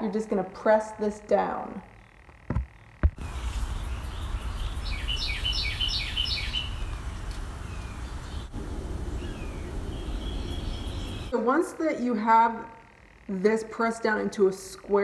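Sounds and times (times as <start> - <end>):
low room hum: 0.0 - 15.0
bird chirping: 1.9 - 11.4.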